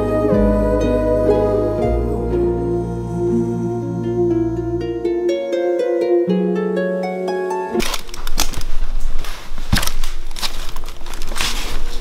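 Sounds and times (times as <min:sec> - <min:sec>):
plucked harp-like music: 0:00.0 - 0:08.0
footsteps crunching on debris: 0:07.8 - 0:12.0.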